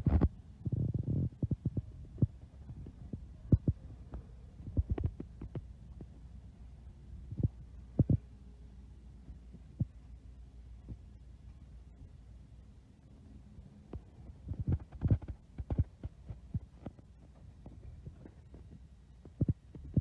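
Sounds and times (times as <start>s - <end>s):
faint low hum: 0.0s - 20.0s.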